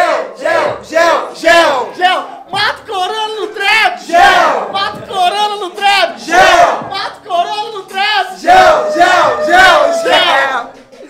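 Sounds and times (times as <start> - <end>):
men shouting and cheering: 0.0 - 11.0.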